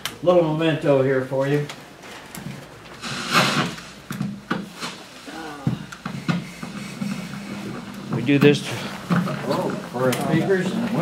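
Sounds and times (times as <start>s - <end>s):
knocks and rustles of handling: 5.6s - 11.0s.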